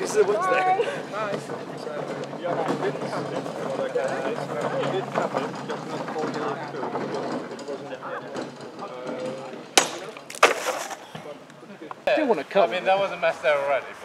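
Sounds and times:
indistinct chatter: 0.0 - 14.0
sword cutting plastic bottle: 9.8 - 11.0.

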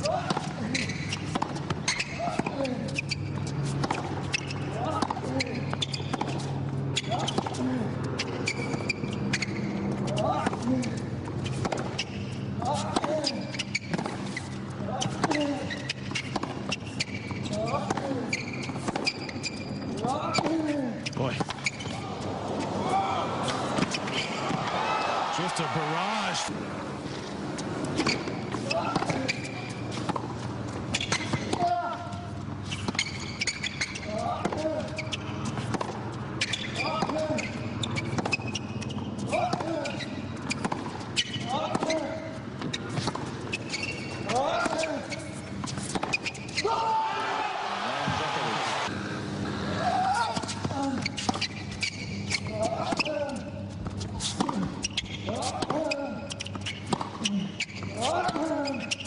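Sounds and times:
ball bouncing on hard court: 0.0 - 7.6, 11.5 - 20.7, 27.8 - 32.0, 32.7 - 46.7, 50.2 - 59.0
crowd noise: 21.8 - 30.4, 47.2 - 49.8
racket striking tennis ball: 27.8 - 31.8, 39.3 - 46.6.

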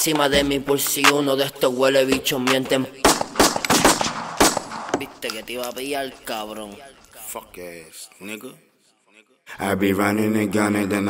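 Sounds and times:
rap track: 0.0 - 7.9
gunshots echoing: 3.0 - 6.8.

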